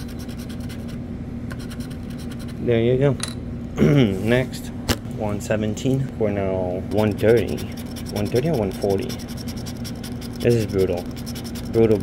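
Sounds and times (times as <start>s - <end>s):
pen scratching lottery ticket: 0.0s - 1.0s, 6.9s - 12.0s.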